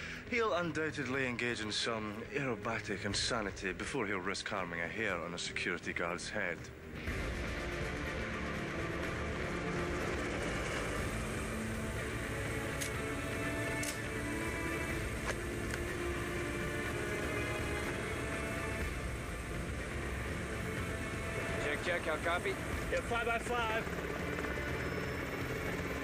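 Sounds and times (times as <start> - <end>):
film music with held tones: 0.0 - 26.0.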